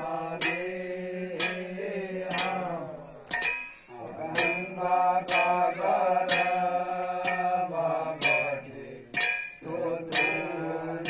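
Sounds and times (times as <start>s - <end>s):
men chanting devotional melody: 0.0s - 11.0s
struck percussion beat: 0.0s - 11.0s.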